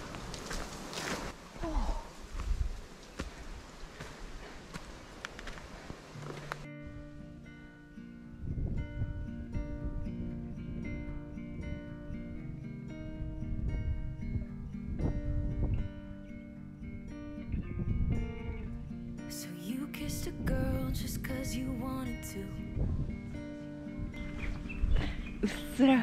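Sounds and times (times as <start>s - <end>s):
footsteps on trail: 0.0s - 6.7s, 24.2s - 25.7s
acoustic guitar music: 6.2s - 26.0s.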